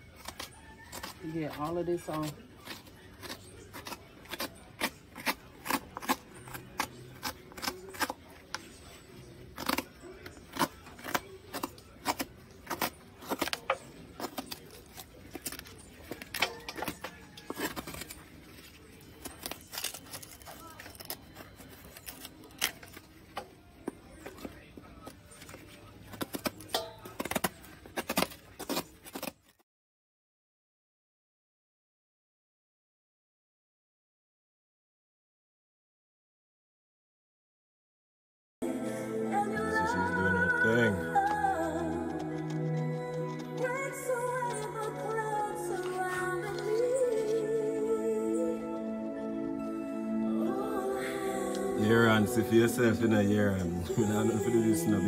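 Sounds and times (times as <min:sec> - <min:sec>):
gourd pulp being scraped: 0:00.0 - 0:29.6, 0:39.6 - 0:49.7.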